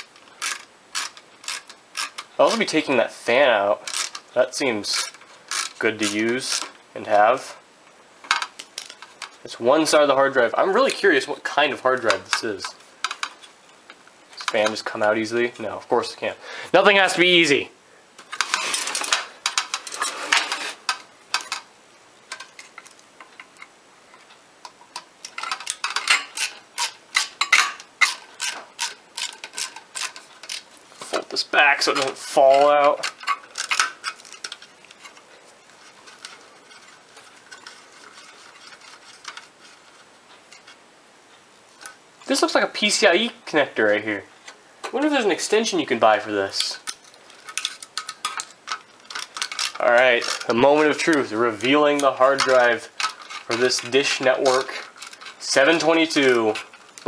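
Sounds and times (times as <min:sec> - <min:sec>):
screwdriver turning a screw: 0:00.0 - 0:02.7, 0:03.9 - 0:04.3, 0:25.2 - 0:30.7, 0:46.9 - 0:51.2
parts clattering: 0:00.0 - 0:07.5, 0:08.2 - 0:15.8, 0:18.2 - 0:40.8, 0:43.9 - 0:57.0.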